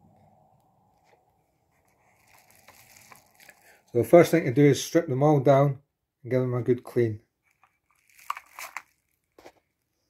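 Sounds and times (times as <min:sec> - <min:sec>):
bubble wrap crinkling: 0:01.7 - 0:03.9, 0:07.5 - 0:09.8.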